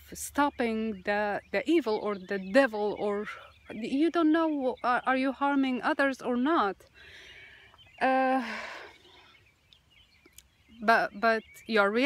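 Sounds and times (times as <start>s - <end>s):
woman speaking: 0.0s - 6.8s, 8.0s - 8.8s, 10.8s - 12.0s
faint outdoor background: 0.0s - 12.0s.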